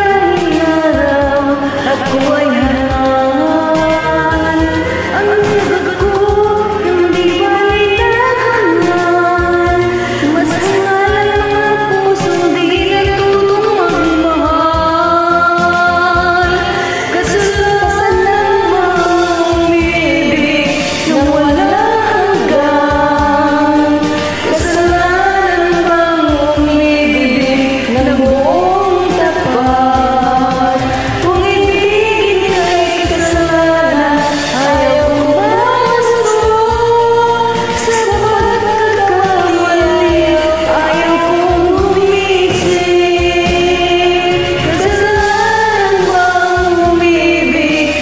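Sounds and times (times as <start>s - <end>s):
karaoke backing track: 0.0s - 48.0s
two women singing a ballad: 0.0s - 48.0s.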